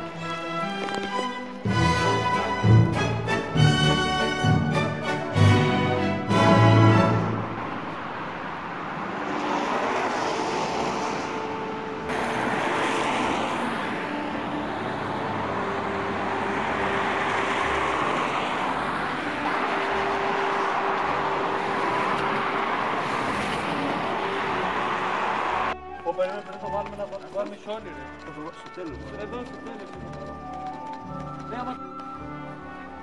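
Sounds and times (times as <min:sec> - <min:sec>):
car tyres hissing on wet road: 0:09.1 - 0:15.3, 0:16.2 - 0:25.7.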